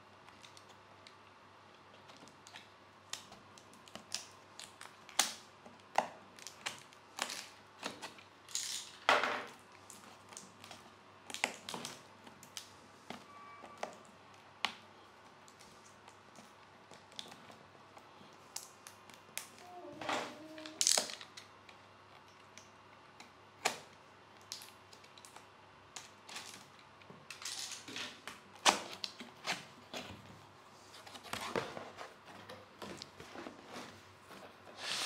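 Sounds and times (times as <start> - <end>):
brief squeak: 13.3 - 13.8
cardboard scraping and rustling: 29.4 - 35.0.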